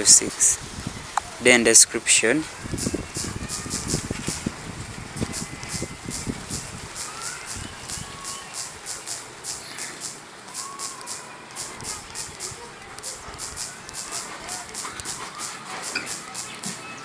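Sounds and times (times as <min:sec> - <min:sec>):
typing on smartphone keyboard: 0:02.7 - 0:16.8.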